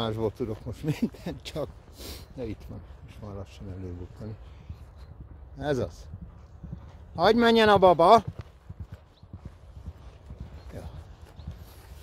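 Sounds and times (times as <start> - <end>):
horse hoofbeats galloping: 0.0 - 12.0.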